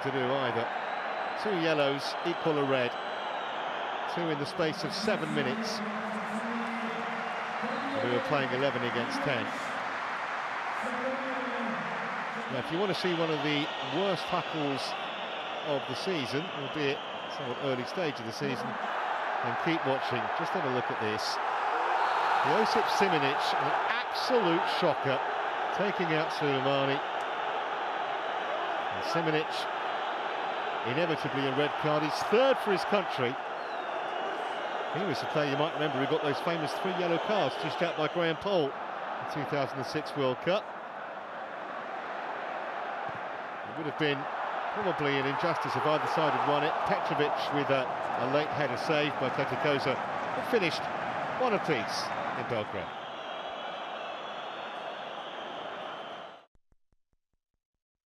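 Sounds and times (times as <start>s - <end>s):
stadium crowd noise: 0.0s - 56.5s.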